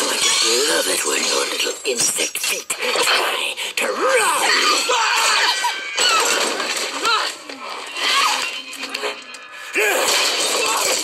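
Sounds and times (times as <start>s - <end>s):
clinking and crashing effects: 0.0s - 2.6s, 4.5s - 11.0s.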